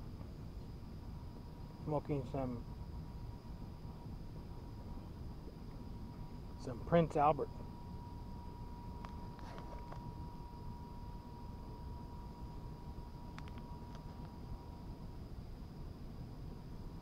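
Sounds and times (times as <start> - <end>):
light clicks: 13.3 - 14.4.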